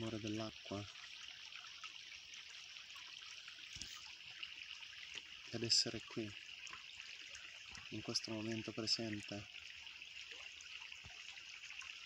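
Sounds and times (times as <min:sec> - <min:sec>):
stream trickling over stones: 0:00.0 - 0:12.0.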